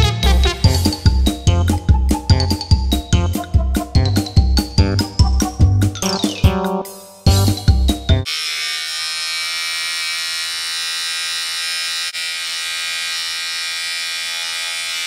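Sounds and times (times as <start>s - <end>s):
electric hair clipper buzzing: 8.2s - 15.0s.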